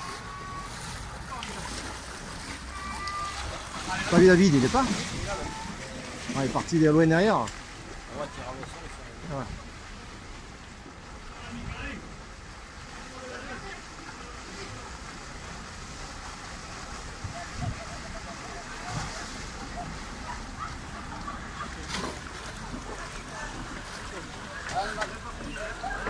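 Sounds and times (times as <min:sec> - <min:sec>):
paddles splashing: 0:00.0 - 0:26.0
rushing canal water: 0:00.0 - 0:26.0.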